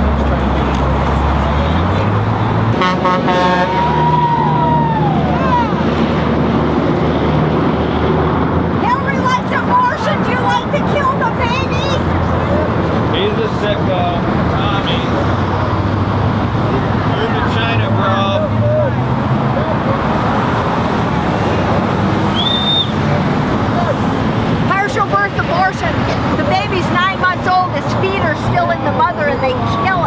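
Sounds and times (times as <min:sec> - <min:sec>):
road traffic passing: 0:00.0 - 0:30.0
voices: 0:08.7 - 0:30.0.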